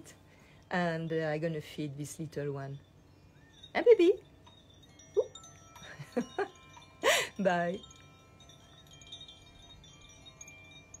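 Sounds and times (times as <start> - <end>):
faint chimes ringing: 0.0 - 11.0.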